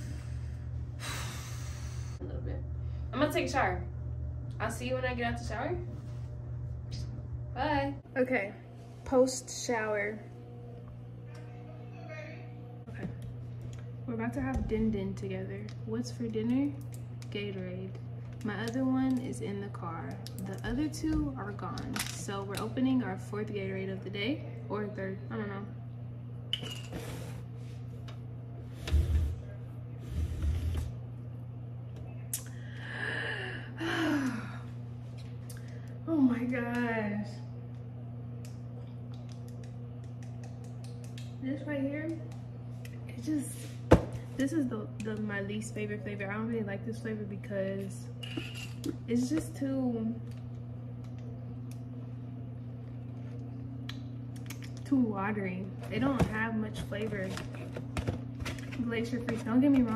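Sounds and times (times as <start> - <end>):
breathy exhale: 0.0 - 2.2
low electrical hum: 0.0 - 59.9.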